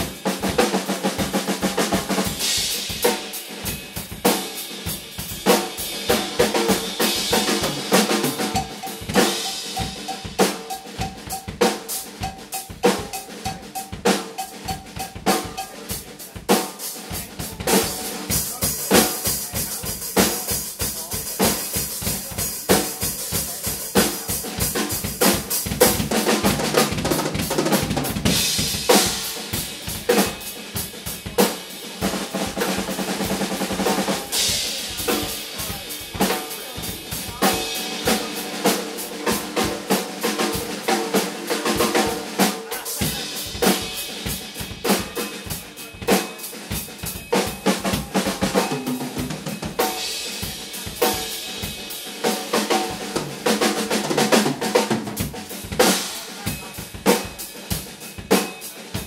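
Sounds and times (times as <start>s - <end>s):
crashing cymbals: 0.0s - 53.8s
drum kits playing: 0.0s - 59.0s.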